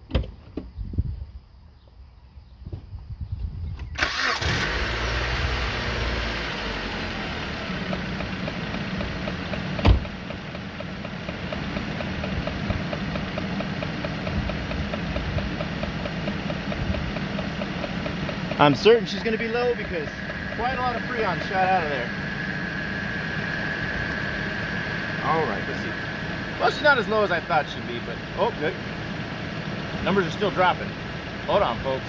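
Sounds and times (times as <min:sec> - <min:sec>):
car engine starting and idling: 0:03.8 - 0:32.0.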